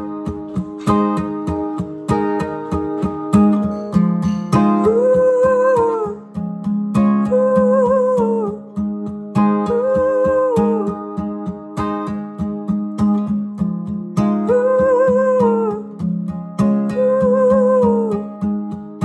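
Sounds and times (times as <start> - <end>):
acoustic guitar strumming: 0.0 - 19.0
man humming a melody: 4.8 - 6.2, 7.3 - 8.6, 9.7 - 11.0, 14.5 - 15.9, 16.9 - 18.2.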